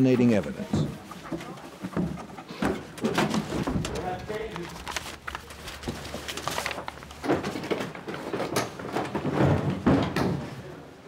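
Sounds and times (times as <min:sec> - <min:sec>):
papers rustling: 0:00.5 - 0:09.9.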